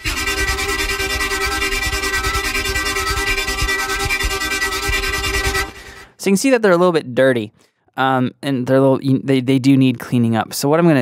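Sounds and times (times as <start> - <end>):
synthesizer stuttering chord: 0.0 - 6.1.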